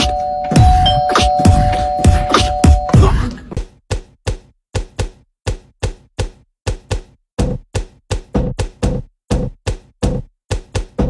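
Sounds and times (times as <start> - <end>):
beatboxed percussive clicks: 3.5 - 11.0.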